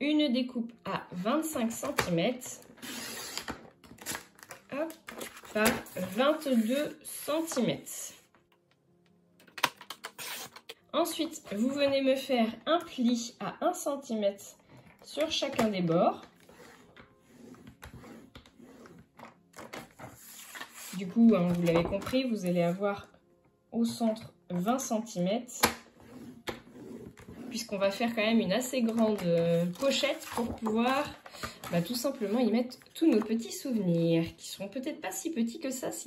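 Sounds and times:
paper scraping and rustling: 2.7s - 7.0s, 16.2s - 22.8s, 26.0s - 27.7s, 28.8s - 33.2s
paper trimmer blade cutting: 2.8s - 3.5s.

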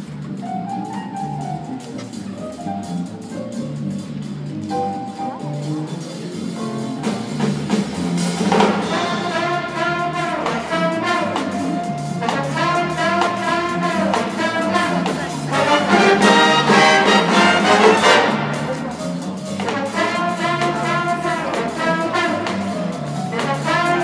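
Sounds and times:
big band jazz horns: 0.0s - 24.0s
jazz rhythm section: 0.0s - 24.0s.

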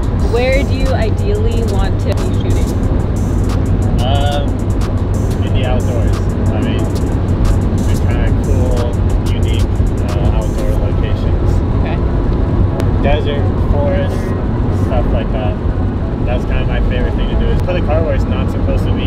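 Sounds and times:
car engine drone and road noise: 0.0s - 19.0s.

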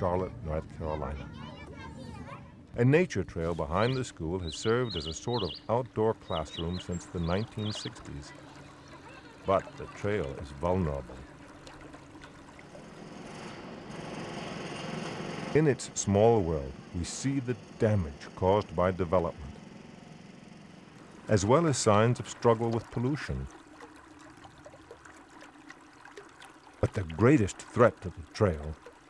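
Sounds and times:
faint outdoor background noise: 0.0s - 29.0s
stream trickling over rocks: 3.6s - 14.0s, 15.6s - 29.0s.

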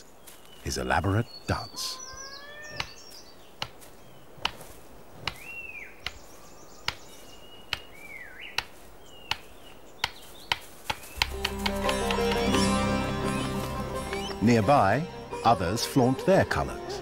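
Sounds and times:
whistled bird calls: 1.0s - 3.1s
bird sharp clicks: 2.7s - 3.8s, 4.4s - 4.6s, 5.2s - 12.6s.

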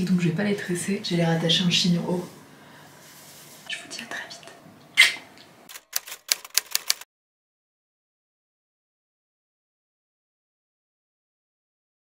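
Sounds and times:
typewriter keys clacking: 5.7s - 7.0s.

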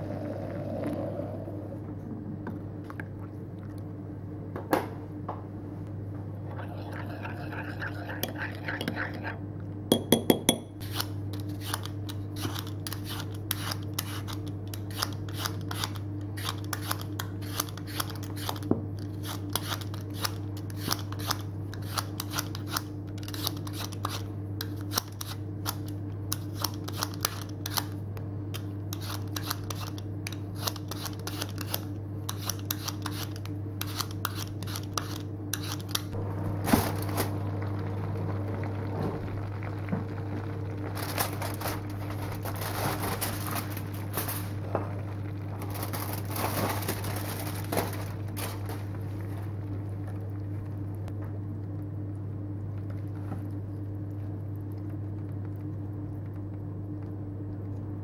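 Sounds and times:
steady low hum: 0.0s - 58.0s
spoon clinking against bowl: 9.9s - 10.8s
peeler scraping potato skin: 10.8s - 28.0s, 28.9s - 36.2s.

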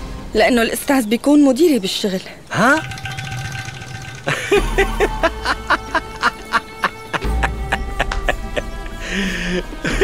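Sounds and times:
dramatic music with low drone: 2.9s - 10.0s
man laughing: 4.3s - 10.0s.

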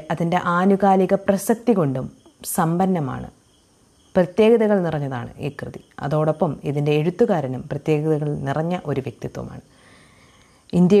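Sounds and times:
woman talking: 0.0s - 3.3s, 4.2s - 9.7s, 10.7s - 11.0s.

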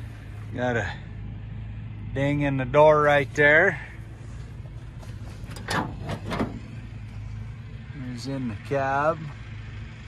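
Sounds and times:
low background rumble: 0.0s - 10.0s
truck door latch clicks and scrapes: 5.4s - 6.7s.

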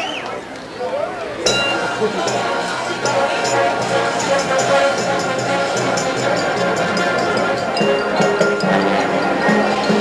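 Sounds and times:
crowd chatter: 0.0s - 10.0s
sharp metallic strike: 1.5s - 6.5s
ringing bell-like tones: 1.5s - 10.0s.

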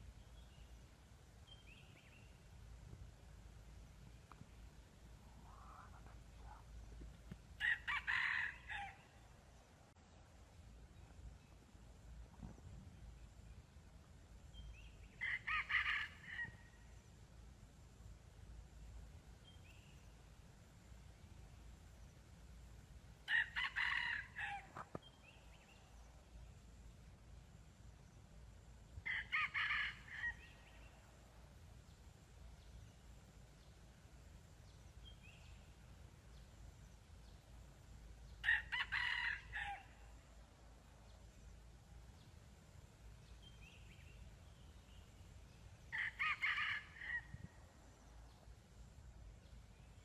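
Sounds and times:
rooster crowing: 7.6s - 9.0s, 38.4s - 39.9s.

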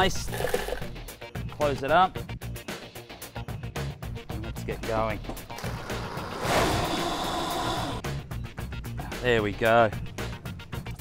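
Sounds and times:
blender motor whirring: 5.6s - 8.0s.

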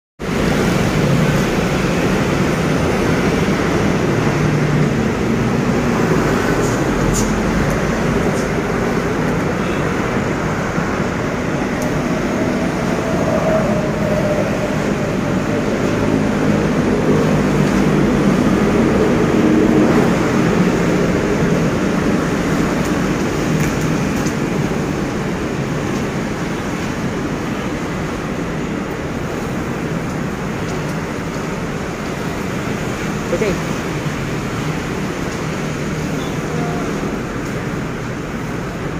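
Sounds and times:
road traffic noise: 0.2s - 38.9s.

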